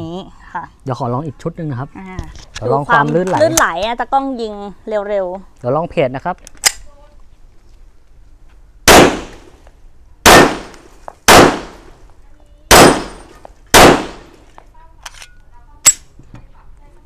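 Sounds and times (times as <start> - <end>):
pistol shots: 8.9 - 9.6, 10.2 - 12.0, 12.7 - 14.4.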